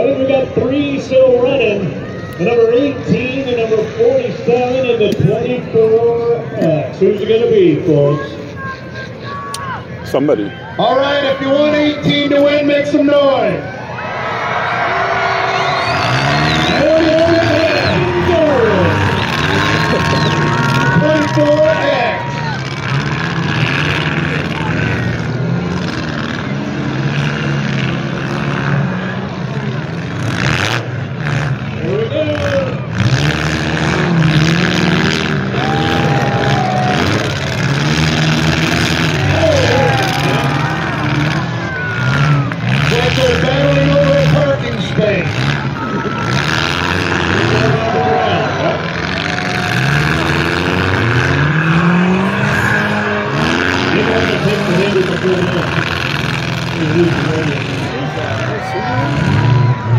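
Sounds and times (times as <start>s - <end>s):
car engines revving: 0.0s - 59.9s
crowd noise: 0.0s - 59.9s.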